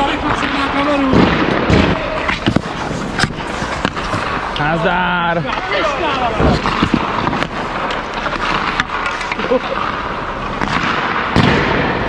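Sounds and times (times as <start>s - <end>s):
skates scraping ice: 0.0s - 11.2s
hockey sticks and pucks knocking: 0.0s - 11.6s.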